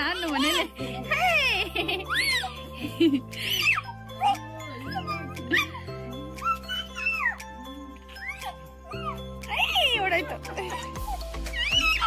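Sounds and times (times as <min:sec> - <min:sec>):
background music with gliding melody: 0:00.0 - 0:12.0.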